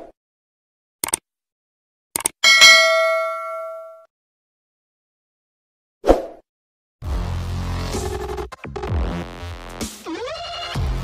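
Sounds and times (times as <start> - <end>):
bright bell ding: 2.4 - 4.1.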